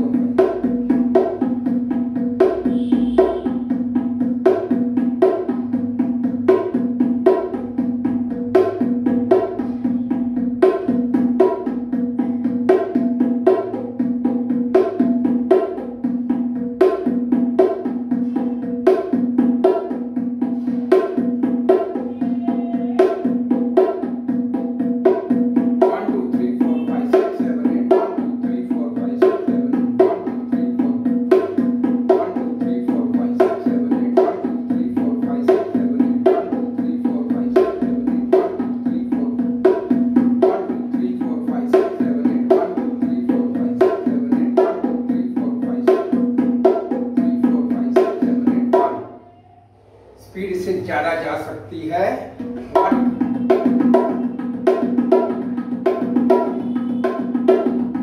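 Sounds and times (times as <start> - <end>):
bongos played by hand: 0.0 - 58.0.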